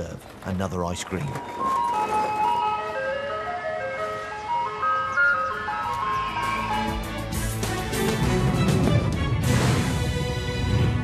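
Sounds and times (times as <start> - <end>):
ice cream van chimes melody: 1.6 - 7.7.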